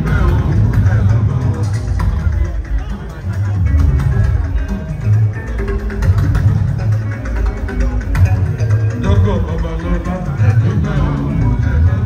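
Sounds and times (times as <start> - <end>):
amplified band music: 0.0 - 12.0
bass line: 0.0 - 12.0.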